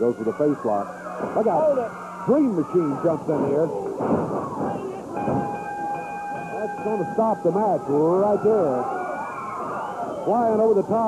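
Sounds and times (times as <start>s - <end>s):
crowd clamouring: 0.0s - 11.0s
steady high tone: 4.8s - 10.7s.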